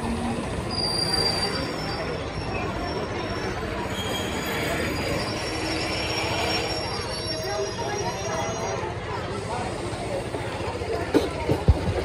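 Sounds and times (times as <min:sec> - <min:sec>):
train coaches rumbling: 0:00.0 - 0:12.0
high-pitched wheel and brake squeal: 0:00.4 - 0:09.4.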